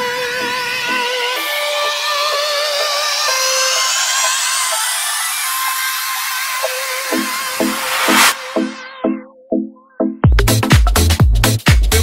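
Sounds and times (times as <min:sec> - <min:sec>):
rising synth whine: 0:00.0 - 0:09.3.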